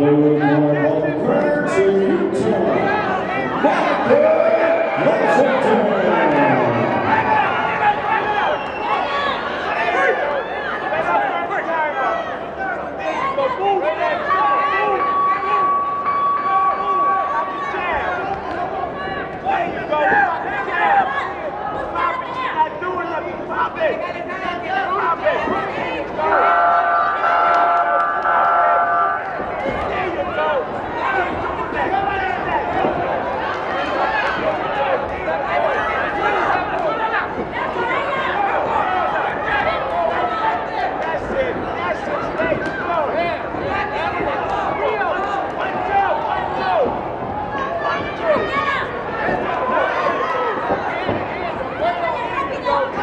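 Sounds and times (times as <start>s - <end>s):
crowd talking and calling out: 0.0s - 53.0s.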